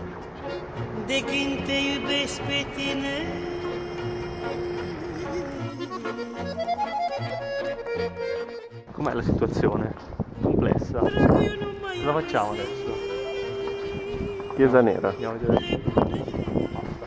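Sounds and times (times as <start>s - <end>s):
folk music: 0.0s - 17.0s.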